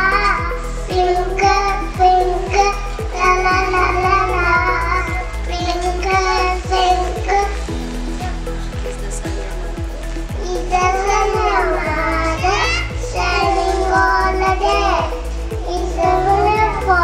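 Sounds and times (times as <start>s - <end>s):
children singing a rhyme: 0.0s - 8.4s, 10.4s - 17.0s
steady beat: 0.0s - 17.0s.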